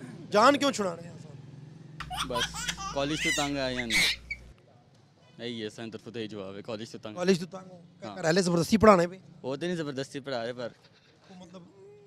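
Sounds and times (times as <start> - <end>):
man laughing and speaking: 2.1 - 4.2.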